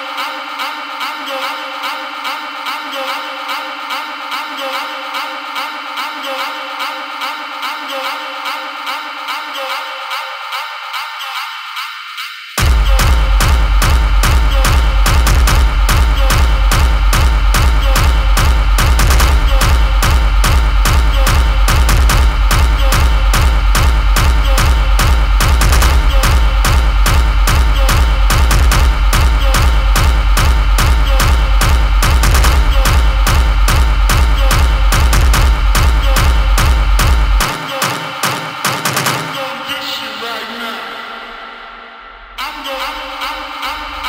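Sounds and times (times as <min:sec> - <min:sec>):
industrial techno music: 0:00.0 - 0:44.0
noisy synths: 0:00.0 - 0:44.0
pounding kick drum: 0:12.6 - 0:39.4.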